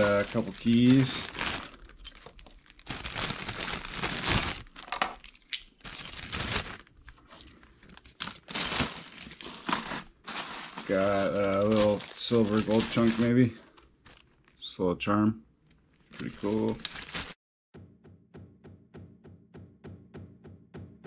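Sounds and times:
plastic bag crinkling: 0.0s - 14.7s, 15.6s - 17.4s.

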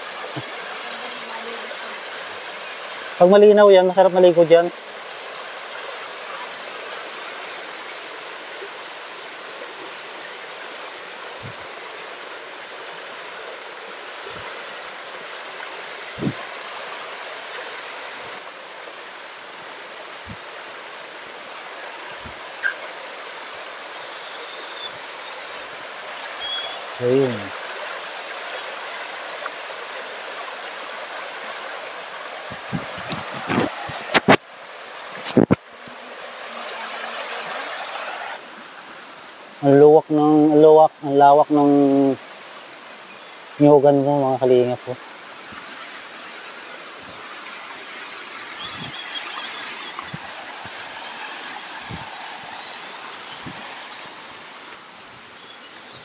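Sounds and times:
creek rushing over rocks: 0.0s - 56.0s.

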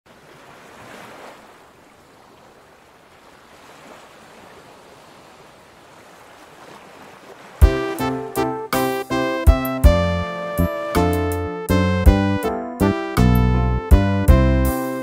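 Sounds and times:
loud keyboard chord: 7.6s - 15.0s.

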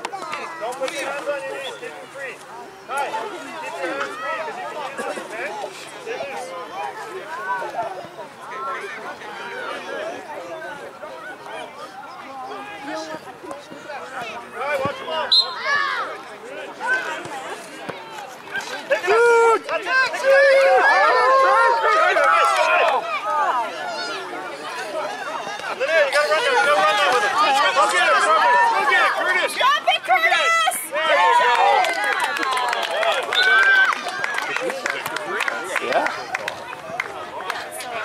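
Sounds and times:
children shouting and chattering: 0.0s - 38.0s.

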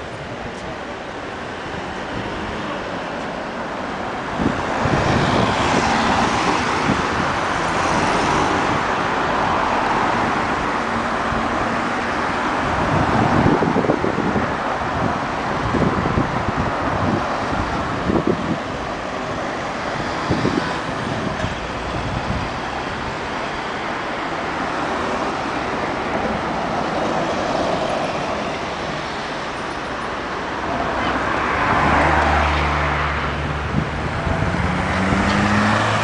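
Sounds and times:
cars passing on city road: 0.0s - 36.0s.

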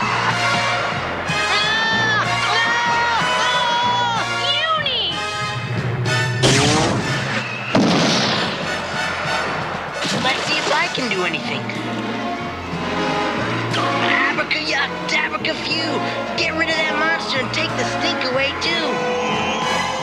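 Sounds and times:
dramatic music: 0.0s - 20.0s
noisy blast: 6.0s - 13.6s.

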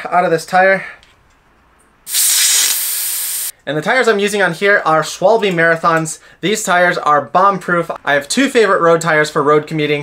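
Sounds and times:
air hissing out of tyre valve: 2.1s - 3.5s.

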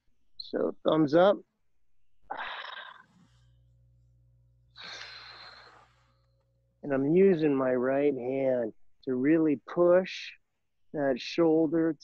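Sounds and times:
man breathing out hard: 4.8s - 5.9s.

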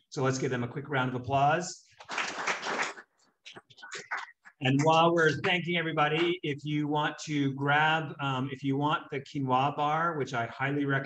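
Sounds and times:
audience applause: 2.0s - 3.0s
scattered claps: 2.0s - 6.4s.

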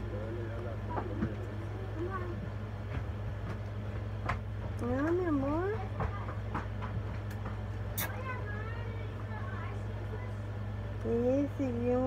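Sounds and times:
faint voices: 0.0s - 3.0s, 7.8s - 12.0s
steady low hum: 0.0s - 12.0s
sharp click: 8.0s - 8.2s.

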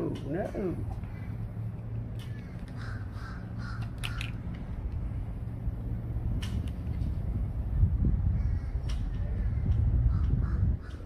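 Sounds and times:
steady low hum: 0.0s - 11.0s
bird calling: 0.8s - 4.4s.

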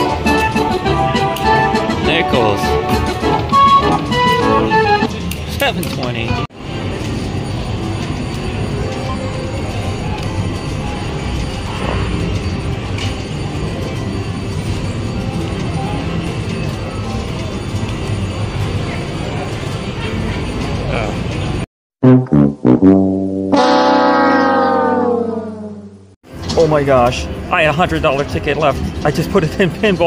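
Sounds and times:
slot machine payout jingle: 0.0s - 5.1s, 6.7s - 21.6s.

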